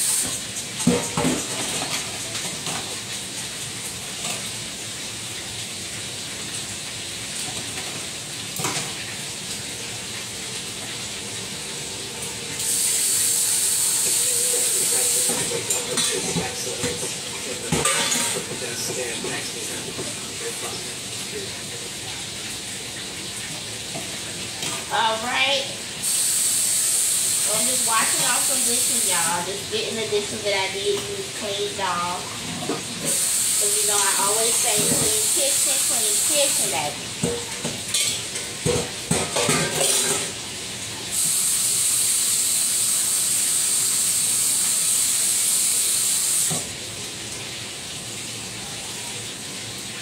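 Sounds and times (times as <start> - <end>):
food sizzling in a pan: 0.0 - 50.0.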